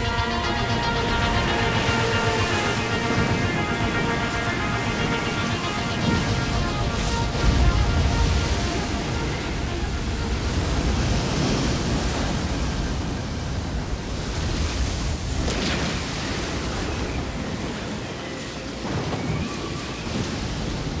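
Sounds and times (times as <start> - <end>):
song music: 0.0 - 11.4
ocean waves rushing: 0.0 - 21.0.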